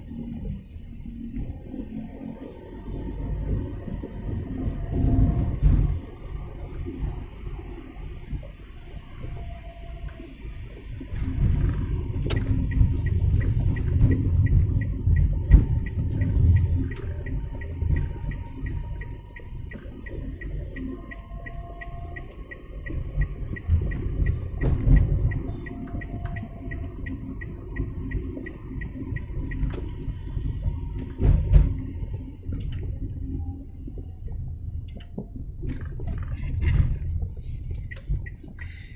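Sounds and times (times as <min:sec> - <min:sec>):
engine and road rumble: 0:00.0 - 0:38.9
turn signal ticking: 0:00.0 - 0:38.9.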